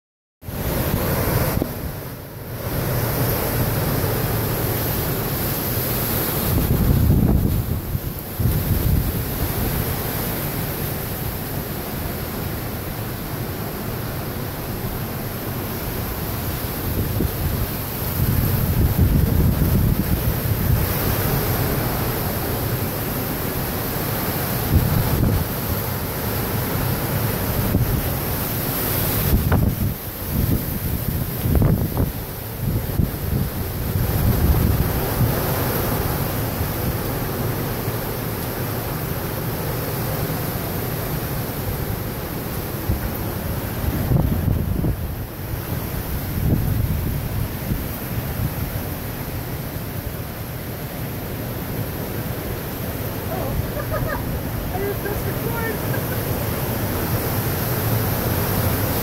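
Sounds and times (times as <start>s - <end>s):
heavy rain: 0.4s - 59.0s
strong wind gusting through trees: 0.4s - 59.0s
wind buffeting microphone: 6.3s - 10.0s, 16.6s - 22.1s, 29.1s - 36.0s, 42.8s - 48.7s.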